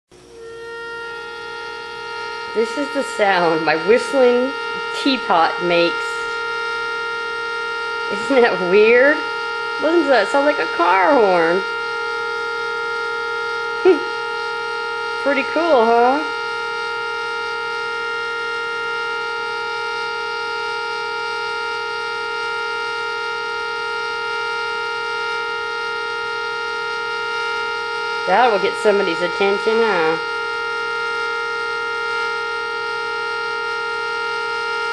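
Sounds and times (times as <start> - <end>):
tea kettle whistling: 0.1 - 34.9.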